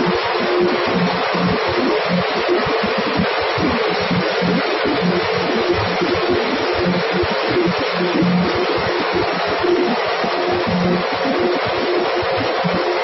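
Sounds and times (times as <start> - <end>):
grain cleaning machine running: 0.0 - 13.0.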